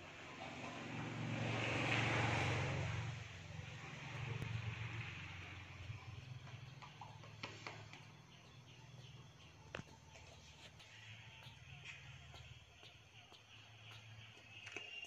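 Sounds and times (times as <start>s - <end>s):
passing vehicle rumble: 0.0s - 12.9s.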